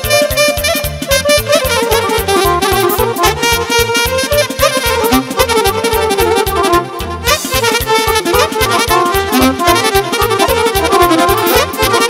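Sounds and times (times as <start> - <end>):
band playing fast party music: 0.0 - 12.0.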